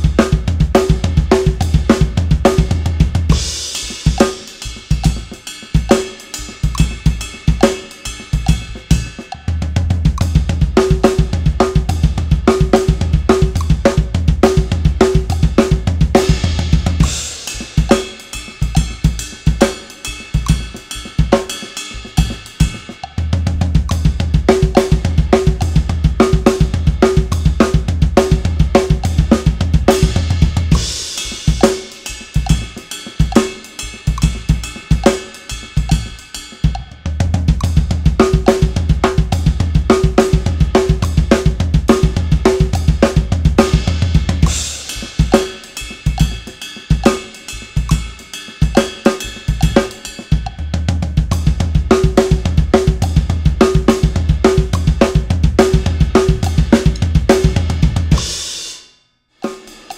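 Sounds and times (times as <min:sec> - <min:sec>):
acoustic drum kit playing: 0:00.0 - 0:58.8.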